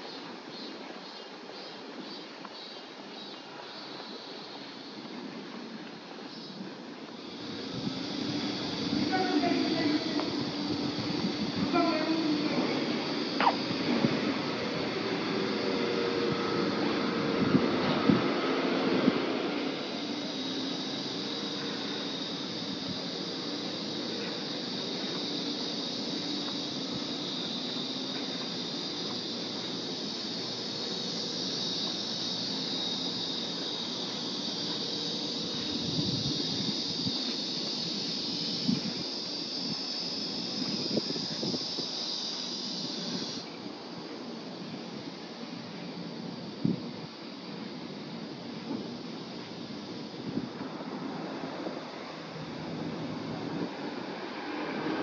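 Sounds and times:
high-pitched hiss: 0.0s - 55.0s.

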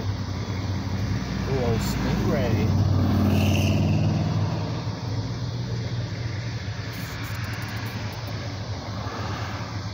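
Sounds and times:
cars passing: 0.0s - 9.9s.

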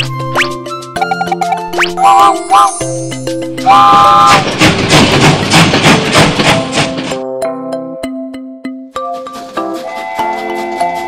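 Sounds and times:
steam train whistle toot: 2.0s - 2.8s, 3.6s - 4.5s, 9.8s - 11.0s
steam train chugging: 3.6s - 7.2s, 9.3s - 11.0s.

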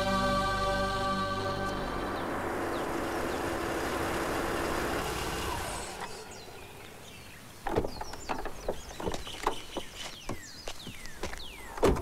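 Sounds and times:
car engine running: 1.4s - 6.4s
tyres on dirt: 2.2s - 12.0s.

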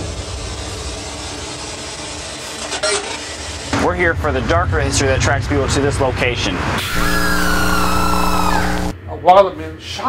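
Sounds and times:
radio static hiss: 6.8s - 8.9s.

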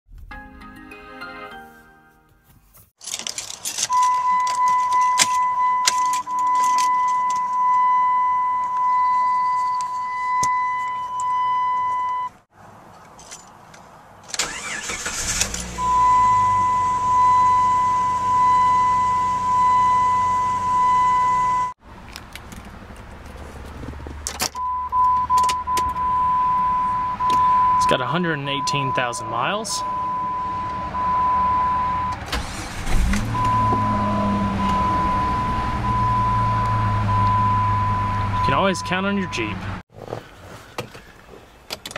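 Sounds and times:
key jingling in ignition: 3.0s - 12.1s, 32.3s - 33.5s
electronic warning chime: 4.0s - 12.3s, 15.8s - 21.7s, 24.6s - 32.2s
car engine cranking and idling: 14.2s - 41.9s.

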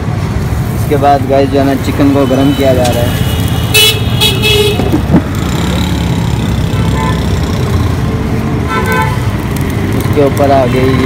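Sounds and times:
car horn toots: 2.2s - 5.0s.

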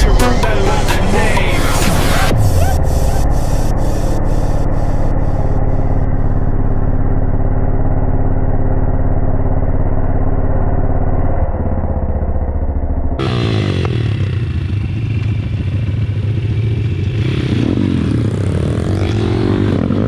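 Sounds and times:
pit bike engine idling: 0.0s - 20.0s.

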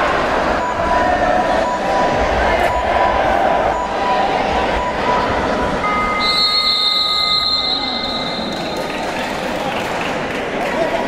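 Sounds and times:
crowd chatter: 0.0s - 11.0s
lower whistle tone: 5.8s - 9.0s
referee's whistle blast: 6.2s - 8.9s.

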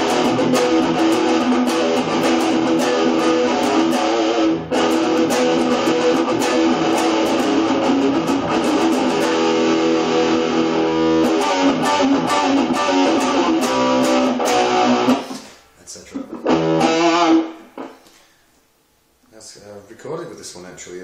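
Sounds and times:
guitar notes with wavering pitch: 0.0s - 15.4s, 16.3s - 17.9s
distorted electric guitar riffing: 0.0s - 18.1s.

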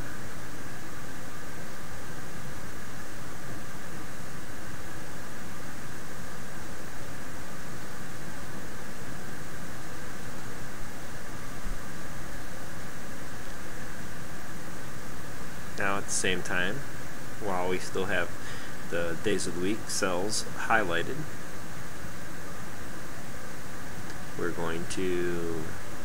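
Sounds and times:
steady background hiss: 0.0s - 26.0s.

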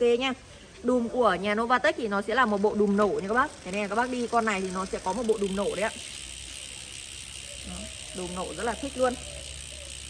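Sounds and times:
bicycle freehub ratchet buzzing: 1.6s - 10.0s.

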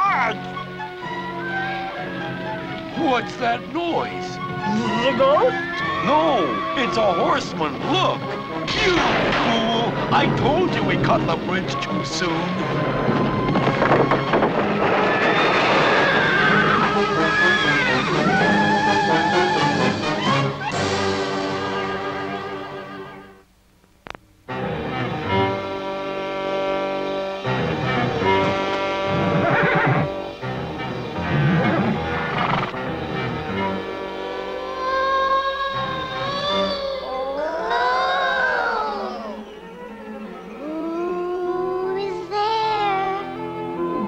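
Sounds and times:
background music: 0.0s - 23.6s, 24.3s - 44.0s
horse whinnying: 14.8s - 21.1s, 28.5s - 30.2s, 31.2s - 32.8s.

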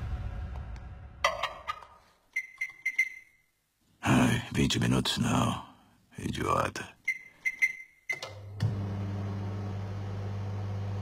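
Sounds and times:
microwave keypad beep: 2.4s - 3.3s, 7.1s - 8.4s
microwave humming: 8.3s - 11.0s.

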